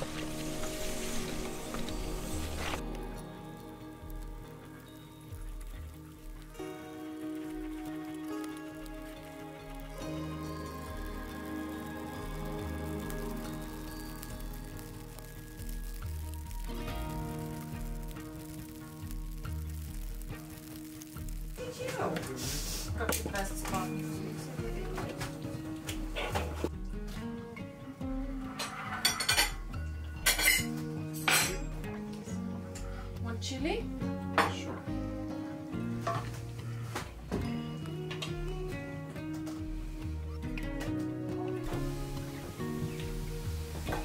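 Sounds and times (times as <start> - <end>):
background music with slow beat: 0.0 - 44.0
metal pots and utensils clinking: 28.4 - 31.8.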